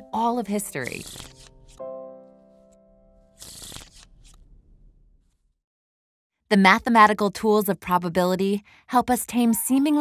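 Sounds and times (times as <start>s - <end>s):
playing cards being riffled: 0.8s - 1.8s, 3.4s - 4.4s
card flicks: 3.4s - 4.4s.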